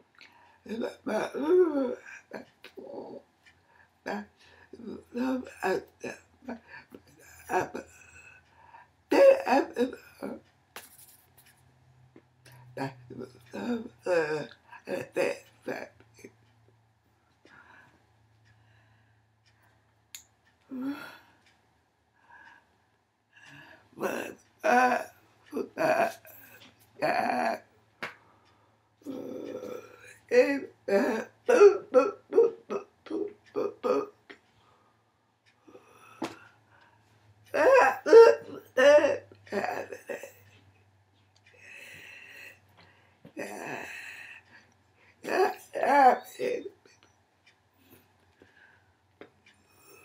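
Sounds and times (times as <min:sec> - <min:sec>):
woman vocalizing: 0:00.7 - 0:03.2, 0:04.0 - 0:08.3, 0:09.1 - 0:10.4, 0:12.8 - 0:16.3, 0:20.7 - 0:21.2, 0:24.0 - 0:27.7, 0:29.0 - 0:34.2, 0:37.5 - 0:40.4, 0:43.4 - 0:44.4, 0:45.2 - 0:46.9.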